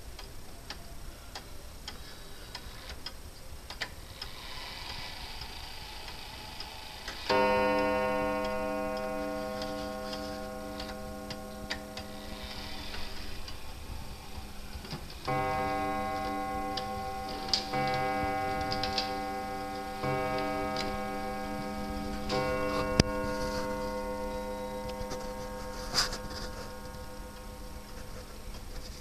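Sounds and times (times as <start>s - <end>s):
wall clock ticking: 5.4s - 12.6s, 14.8s - 25.6s
clock striking: 7.1s - 13.8s, 14.5s - 28.2s.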